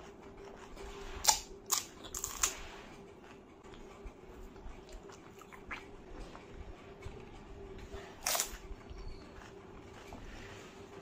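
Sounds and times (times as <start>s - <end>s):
mouth chewing crisp food: 0.0s - 6.5s, 7.8s - 10.9s.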